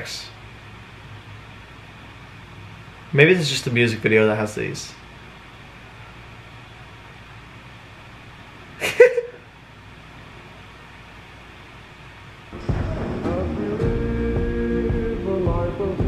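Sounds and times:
low room hum: 0.0s - 16.0s
loud music: 12.6s - 16.0s.

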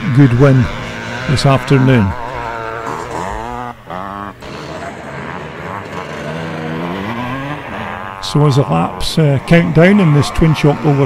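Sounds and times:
motocross bike engine revving: 0.0s - 11.0s.

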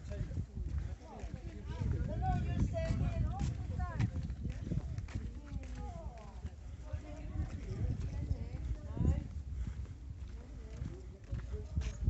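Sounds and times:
footsteps on a path: 0.0s - 12.0s
steady low rumble: 0.0s - 12.0s.

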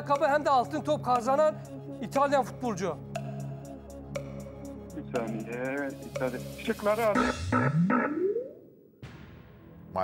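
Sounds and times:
low steady music bed: 0.0s - 7.7s.

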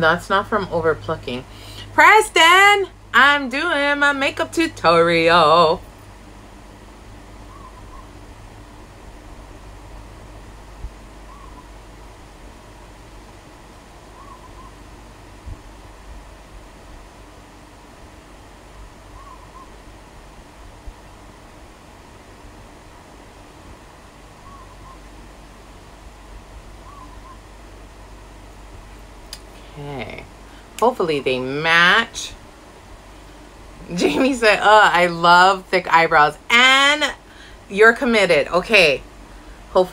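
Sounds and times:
low room hum: 0.0s - 39.9s
faint hoot-like call: 7.5s - 8.1s, 11.3s - 11.7s, 14.2s - 14.8s, 19.2s - 19.8s, 24.4s - 25.0s, 26.8s - 27.4s.

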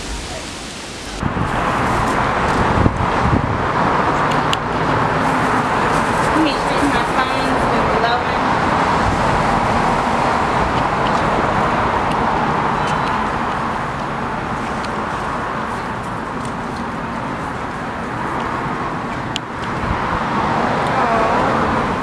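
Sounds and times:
city traffic noise: 0.0s - 22.0s
faint voices talking: 4.2s - 8.8s, 20.8s - 22.0s.

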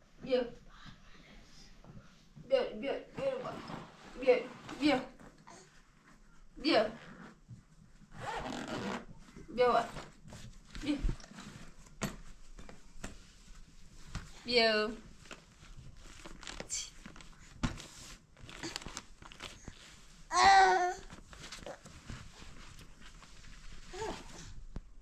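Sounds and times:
backpack zipper being pulled: 8.1s - 9.1s.

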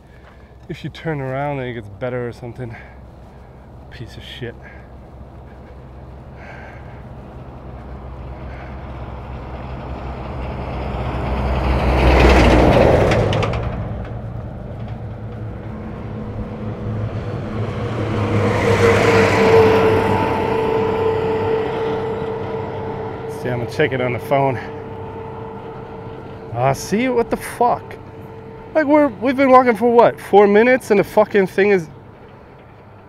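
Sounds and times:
road vehicles passing on asphalt: 0.0s - 33.0s
steady traffic hum: 0.0s - 33.0s.

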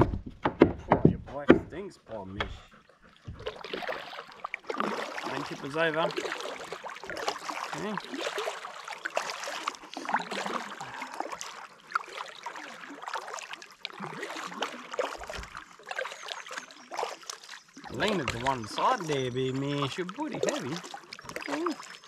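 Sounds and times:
water trickling: 2.1s - 22.0s
paddle splashing in water: 2.4s - 22.0s.

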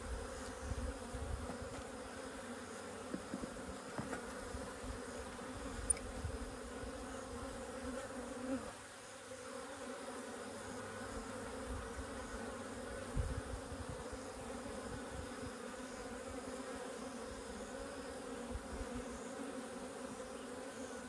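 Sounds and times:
honey bees buzzing: 0.0s - 21.0s.

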